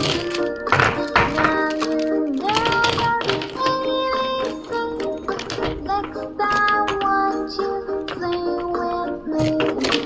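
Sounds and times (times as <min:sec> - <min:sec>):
background music with gliding melody: 0:00.0 - 0:10.0.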